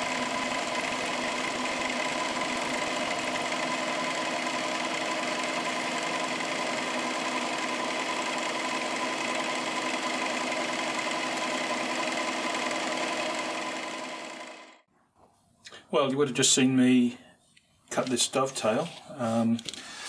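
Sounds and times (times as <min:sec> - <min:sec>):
milling machine whine: 0:00.0 - 0:14.8.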